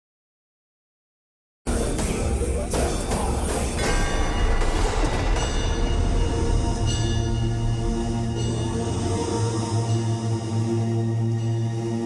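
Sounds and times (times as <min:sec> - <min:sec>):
deep low drone: 0:01.7 - 0:12.0
bell-like ringing tones: 0:03.7 - 0:12.0.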